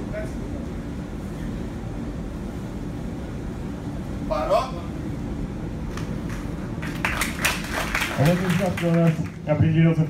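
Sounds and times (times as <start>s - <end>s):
spectators clapping: 5.9s - 9.5s.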